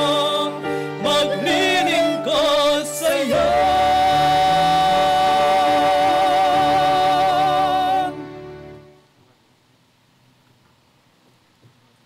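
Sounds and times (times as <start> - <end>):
woman and man singing a hymn: 0.0 - 8.3.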